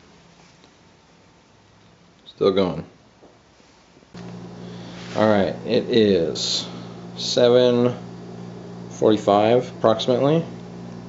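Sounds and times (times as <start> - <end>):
steady low hum: 4.2 - 11.0.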